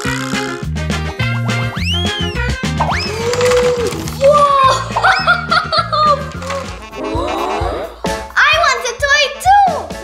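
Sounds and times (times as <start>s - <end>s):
bouncy background music: 0.0s - 10.0s
rising cartoon whistle effects: 1.6s - 3.7s
child's voice: 4.2s - 5.0s, 8.3s - 10.0s.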